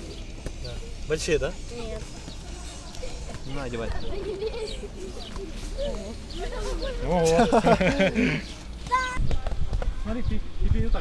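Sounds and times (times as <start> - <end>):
people talking: 0.6 - 11.0.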